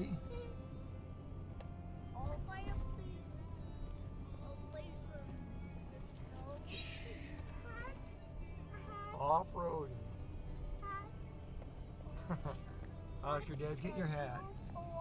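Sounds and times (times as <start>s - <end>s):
vehicle engine and tyres droning: 0.0s - 15.0s.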